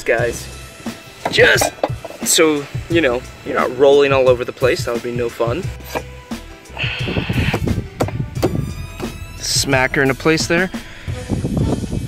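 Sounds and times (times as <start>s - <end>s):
wheel chock knocking: 1.2s - 2.4s, 7.5s - 8.7s
wheel chock scraping on wood: 5.7s - 6.1s.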